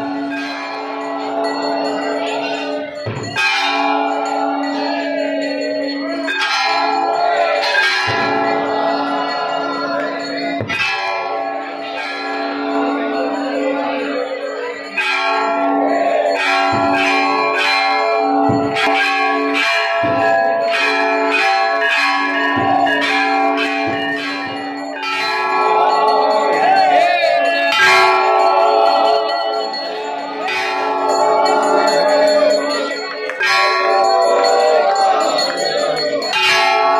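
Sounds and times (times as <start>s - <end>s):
temple bells ringing: 0.0s - 36.9s.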